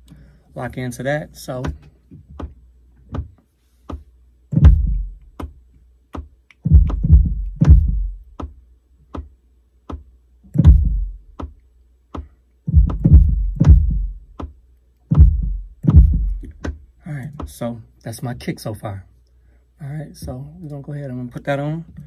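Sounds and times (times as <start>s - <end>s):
deep electronic kick drum hits: 4.5s - 5.3s, 6.6s - 8.4s, 10.6s - 11.5s, 12.7s - 14.4s, 15.1s - 16.6s.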